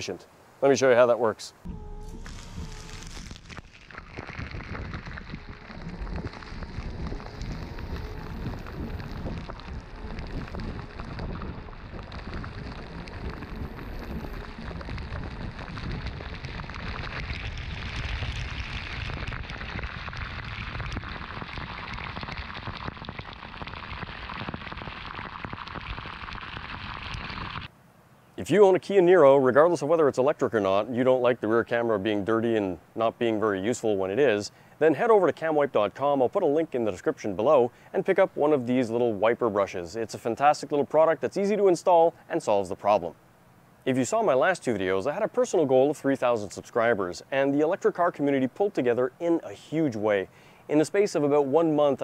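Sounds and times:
water spattering on car: 0:02.1 - 0:27.7.

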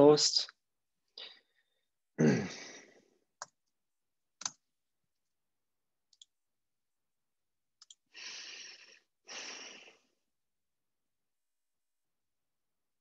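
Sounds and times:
keyboard and mouse clicks: 0:04.4 - 0:04.6, 0:06.1 - 0:06.4, 0:07.8 - 0:08.1
breath into microphone: 0:08.1 - 0:10.1.

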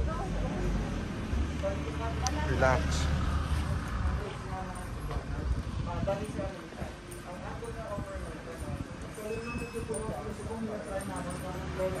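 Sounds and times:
people talking quietly: 0:00.0 - 0:12.0.

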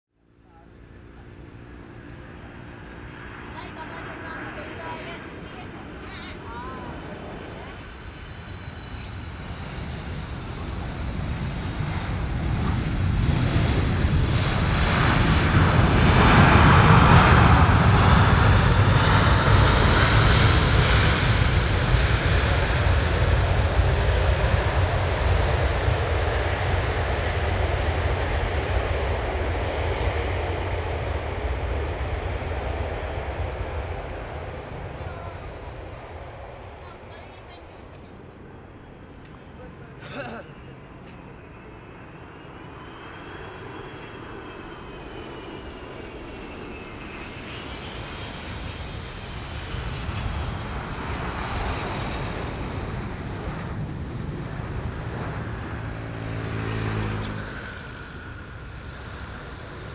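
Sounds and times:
jet engines roaring: 0:00.2 - 0:59.9.

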